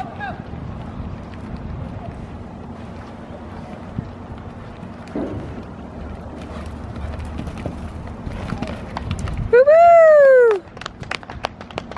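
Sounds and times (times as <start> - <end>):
hoofbeats on sand: 3.6 - 9.5.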